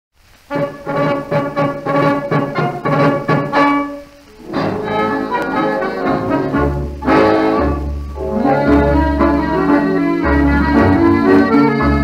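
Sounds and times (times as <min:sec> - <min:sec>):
tango band with brass: 0:00.5 - 0:12.0.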